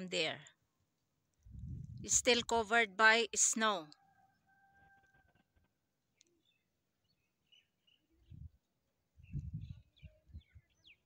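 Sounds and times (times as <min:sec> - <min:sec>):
muffled bumps on microphone: 0:01.5 - 0:02.1, 0:09.3 - 0:10.4
small birds chirping: 0:06.0 - 0:11.0.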